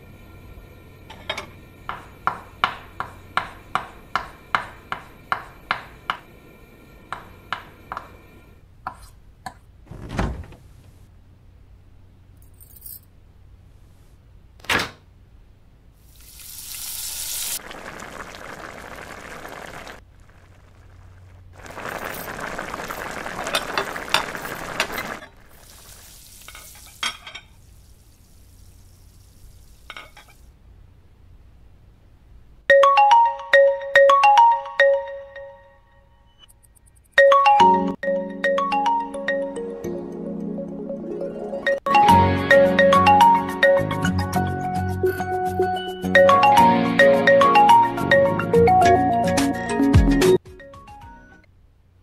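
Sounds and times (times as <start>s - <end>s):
smartphone ringtone chiming melody: 32.7s - 35.9s.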